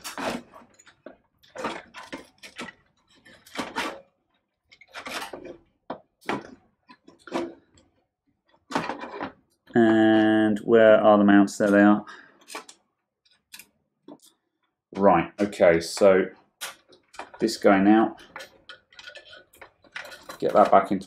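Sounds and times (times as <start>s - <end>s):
cables rustling: 0.0s - 10.6s, 11.6s - 21.0s.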